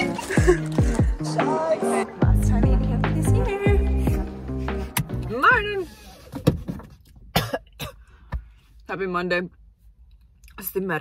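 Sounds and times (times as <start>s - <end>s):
woman speaking: 5.3s - 5.9s, 10.5s - 11.0s
woman clearing her throat: 7.3s - 8.0s.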